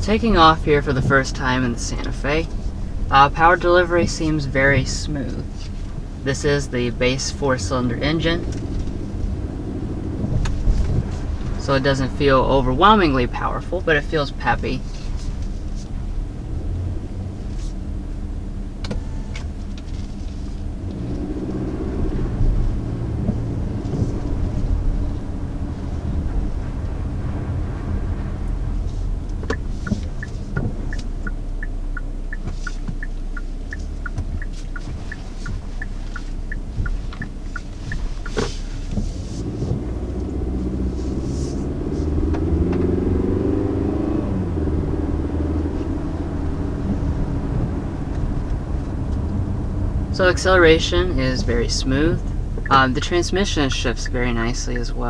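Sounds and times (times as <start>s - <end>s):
car engine accelerating: 0.0s - 55.0s
road rumble: 0.0s - 55.0s
turn signal ticking: 0.0s - 55.0s.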